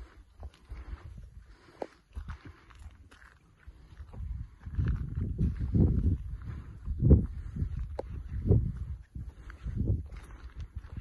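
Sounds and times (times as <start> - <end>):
footsteps on rocky trail: 0.0 - 11.0
wind buffeting microphone: 3.7 - 11.0.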